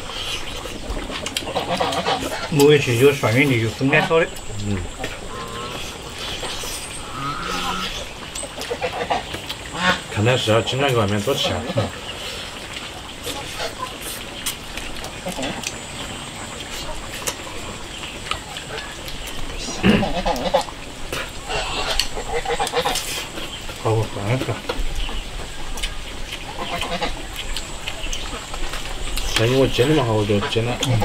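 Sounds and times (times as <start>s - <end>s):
chewing and slurping: 0.0s - 31.0s
person humming mm: 4.6s - 4.9s.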